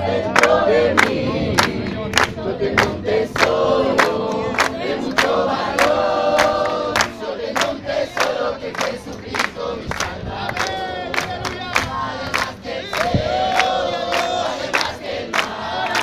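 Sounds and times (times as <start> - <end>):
congregation singing: 0.0 - 16.0
people clapping in time: 0.2 - 16.0.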